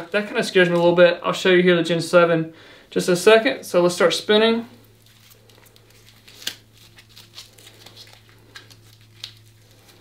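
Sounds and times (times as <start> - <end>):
strap crinkling: 4.8 - 10.0.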